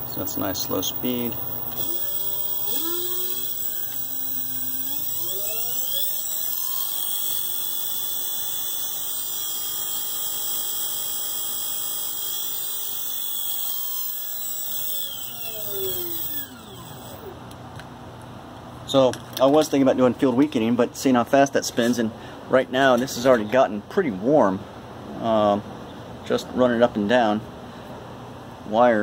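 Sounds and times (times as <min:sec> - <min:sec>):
high electronic whine: 0:00.0 - 0:17.4
alternator motor whining: 0:00.0 - 0:17.5.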